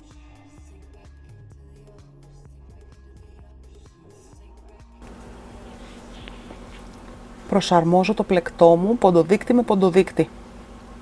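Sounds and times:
faint low buzzing hum: 5.0s - 11.0s.

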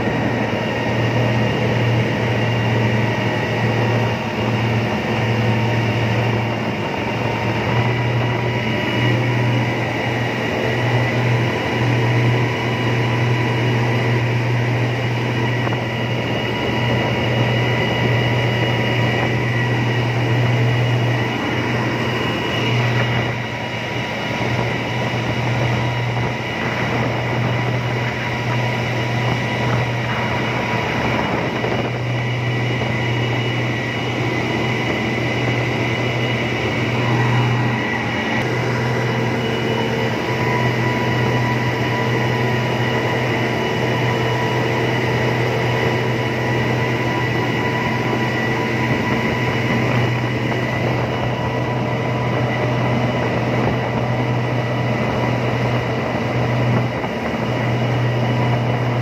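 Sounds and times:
outboard motor droning: 0.0s - 59.0s
water rushing from wake: 0.0s - 59.0s.

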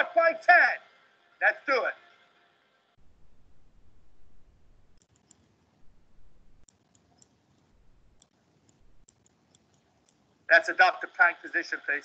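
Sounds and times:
low background hiss: 0.0s - 12.0s
faint high-pitched clicks: 5.0s - 5.5s, 6.6s - 10.5s.

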